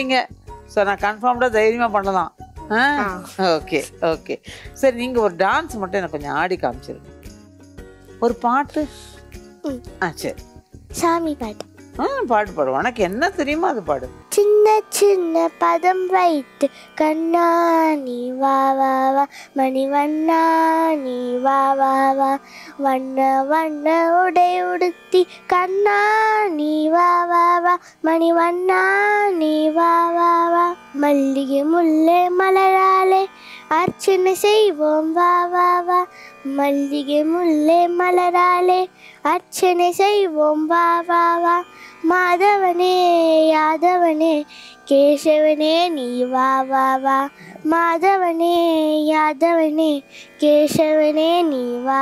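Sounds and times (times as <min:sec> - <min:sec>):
girl singing devotional song: 0:00.0 - 0:52.0.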